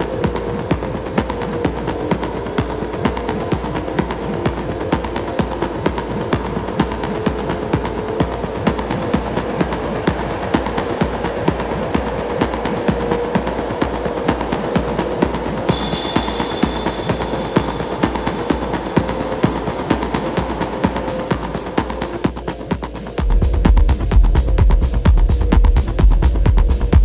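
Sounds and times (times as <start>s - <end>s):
techno kick drum: 0.0s - 27.0s.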